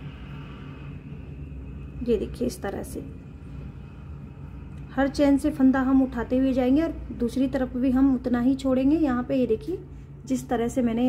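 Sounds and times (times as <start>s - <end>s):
low background rumble: 0.0s - 11.0s
woman's voice: 2.0s - 3.2s, 4.9s - 11.0s.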